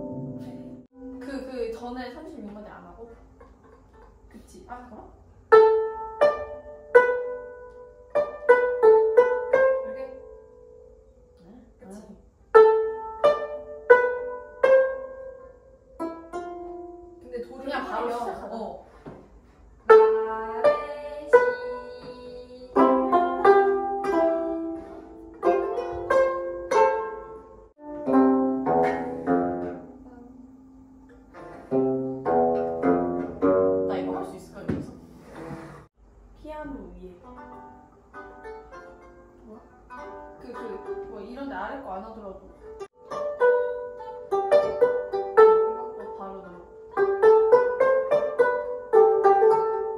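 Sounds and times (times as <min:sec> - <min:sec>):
plucked zithers playing: 0:00.0 - 0:02.7, 0:05.5 - 0:11.3, 0:12.5 - 0:18.6, 0:19.9 - 0:35.1, 0:37.2 - 0:49.9.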